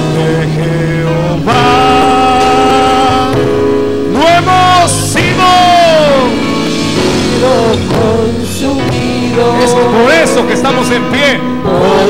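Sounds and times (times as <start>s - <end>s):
instrumental backing: 0.0s - 12.0s
man singing into a microphone: 0.0s - 12.0s.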